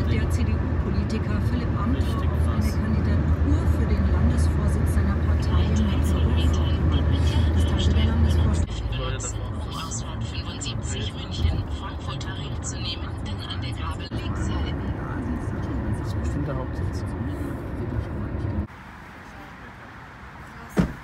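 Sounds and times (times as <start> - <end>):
car cabin road noise: 0.0 - 21.0.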